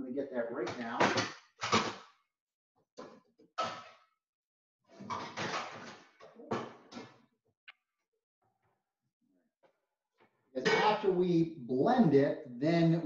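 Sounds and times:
cookware clattering: 0:10.6 - 0:11.1.

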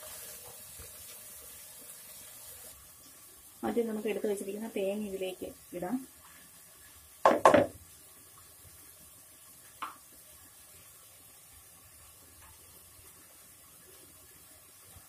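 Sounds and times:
plastic scoop knocking bowl: 0:07.3 - 0:07.8.

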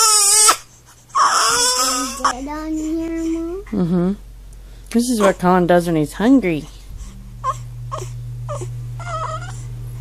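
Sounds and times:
baby crying: 0:00.0 - 0:03.3, 0:07.4 - 0:09.6
low hum: 0:03.4 - 0:10.0.

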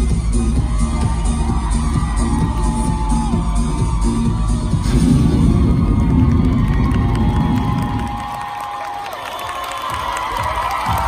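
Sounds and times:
dance music with heavy beat: 0:00.0 - 0:08.8, 0:09.8 - 0:11.0
audience cheering and shrieking: 0:00.0 - 0:11.0.

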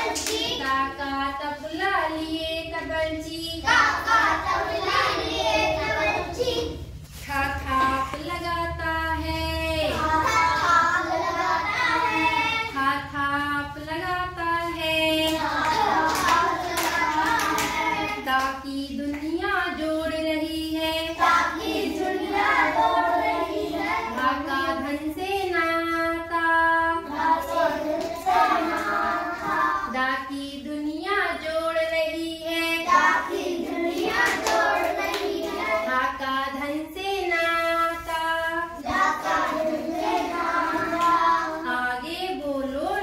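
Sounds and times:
children singing together: 0:00.0 - 0:01.0, 0:03.6 - 0:07.0, 0:09.9 - 0:12.9, 0:15.2 - 0:18.3, 0:20.8 - 0:25.2, 0:26.8 - 0:30.0, 0:32.4 - 0:36.2, 0:38.7 - 0:42.0.

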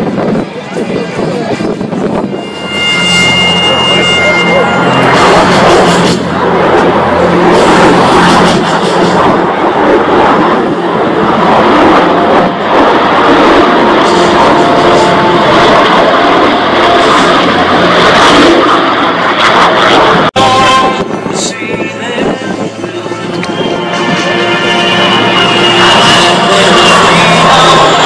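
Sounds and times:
jet engine roar: 0:00.0 - 0:28.0
propeller plane piston engine: 0:01.4 - 0:20.3.

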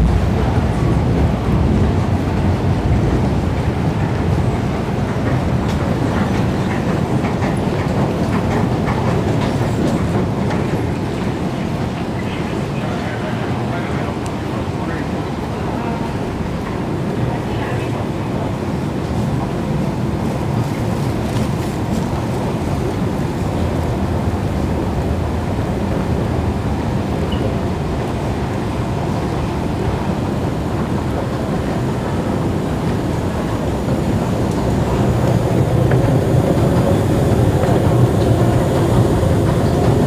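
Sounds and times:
underground station rumble: 0:00.0 - 0:40.0.

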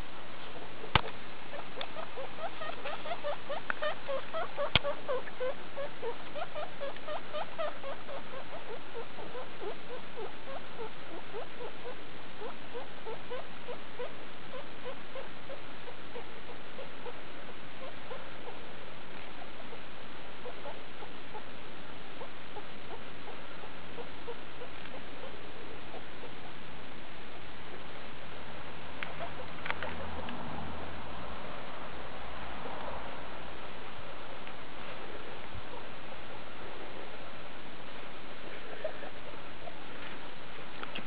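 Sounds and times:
guinea pig pups squeaking: 0:00.5 - 0:18.6, 0:22.2 - 0:26.5, 0:29.0 - 0:30.3.

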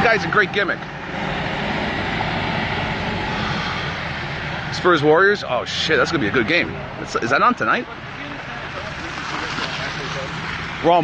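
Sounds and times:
city street traffic: 0:00.0 - 0:11.0.

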